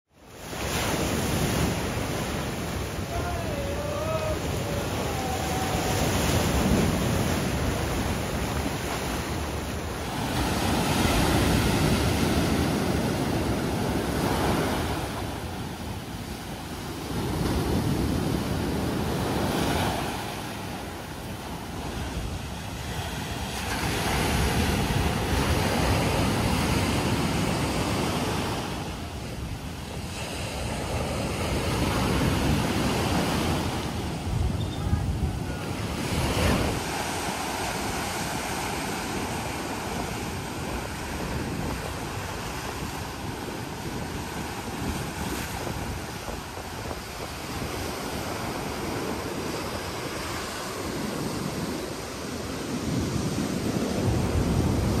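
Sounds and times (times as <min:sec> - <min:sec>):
ocean surf breaking on rocks: 0:00.2 - 0:55.0.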